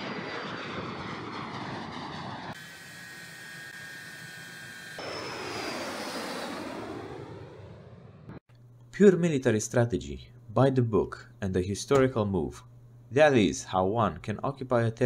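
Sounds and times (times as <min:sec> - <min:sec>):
jet engines passing with falling whine: 0:00.0 - 0:08.5.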